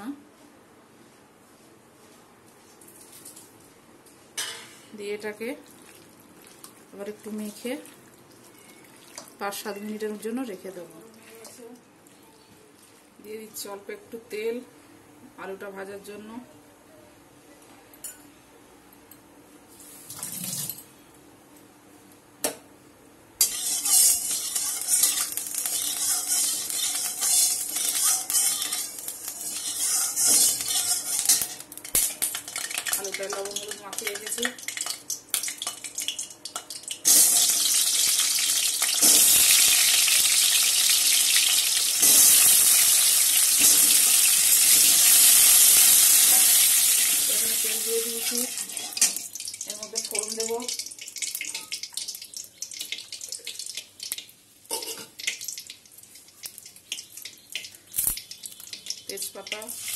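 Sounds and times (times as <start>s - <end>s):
metal spatula scraping a pan: 23.4s - 31.6s
hot oil sizzling in a pan: 23.4s - 59.9s.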